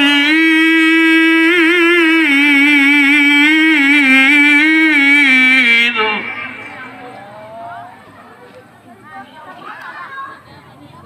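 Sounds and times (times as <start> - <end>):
man reciting melodically into microphone: 0.0 - 7.5.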